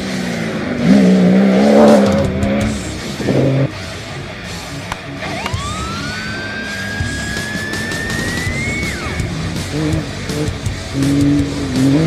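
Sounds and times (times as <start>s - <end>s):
background music with low notes: 0.0s - 12.0s
rally car engine driving hard: 0.0s - 12.0s.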